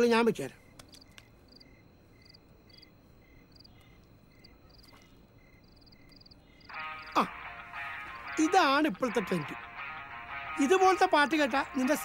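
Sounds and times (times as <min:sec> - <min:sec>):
night insects chirping: 0:00.0 - 0:12.0
music: 0:06.7 - 0:12.0.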